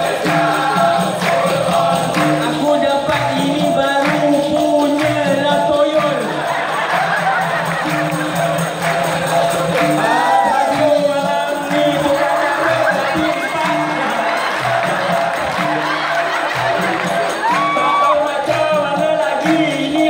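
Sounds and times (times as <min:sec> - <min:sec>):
crowd cheering: 0:00.0 - 0:20.0
singer over pa music: 0:00.0 - 0:20.0.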